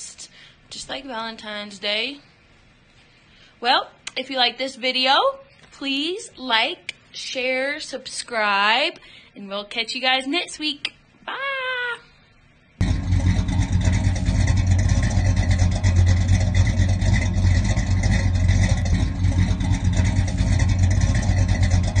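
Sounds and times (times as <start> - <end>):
loud car engine running: 12.8 - 22.0.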